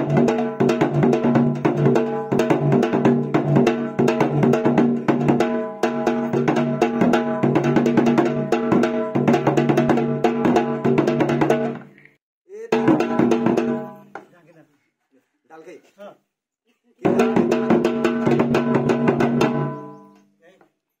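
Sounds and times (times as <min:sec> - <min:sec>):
barrel drum played by hand: 0:00.0 - 0:11.9, 0:12.7 - 0:14.2, 0:17.0 - 0:20.0.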